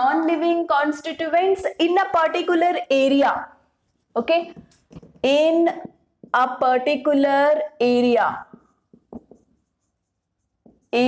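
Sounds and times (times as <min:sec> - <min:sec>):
marker pen on whiteboard: 0:00.0 - 0:11.0.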